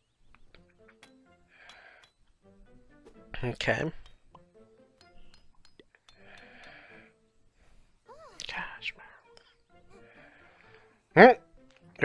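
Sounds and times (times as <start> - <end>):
cartoon character voice: 8.1 - 8.6.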